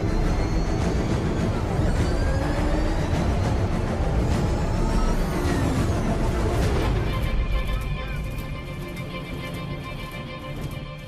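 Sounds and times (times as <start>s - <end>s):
dramatic film music: 0.0s - 11.0s.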